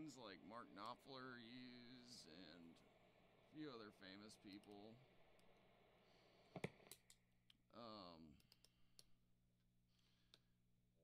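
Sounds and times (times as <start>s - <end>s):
guitar amp hum: 0.0s - 6.8s.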